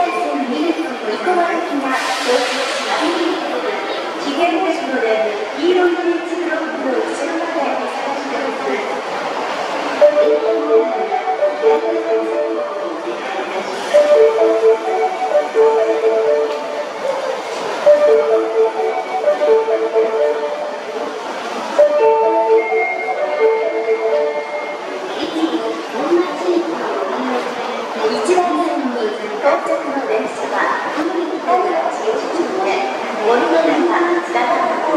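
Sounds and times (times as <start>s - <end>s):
train arriving rumble: 0.0s - 34.9s
electronic chime melody: 10.0s - 13.0s, 13.9s - 21.1s, 21.7s - 25.6s.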